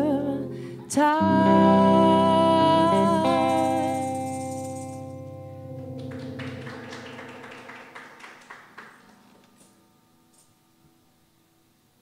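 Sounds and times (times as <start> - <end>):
electric guitar chord ringing: 0.0 - 8.0, 8.9 - 11.7
tambourine jingles: 3.3 - 5.2.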